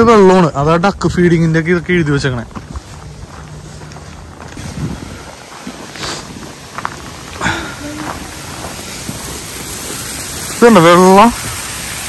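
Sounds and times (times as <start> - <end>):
wind rumbling on microphone: 0.0 - 10.6.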